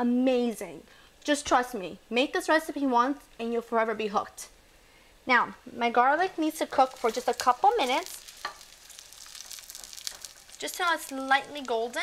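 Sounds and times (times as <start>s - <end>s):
garlic sizzling in oil: 6.1s - 12.0s.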